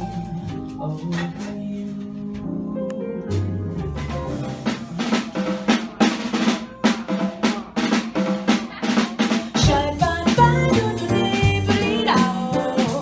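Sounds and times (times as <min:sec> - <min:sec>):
jazz drum solo: 0:00.0 - 0:02.6, 0:03.2 - 0:13.0
upright bass and jazz band: 0:00.0 - 0:13.0.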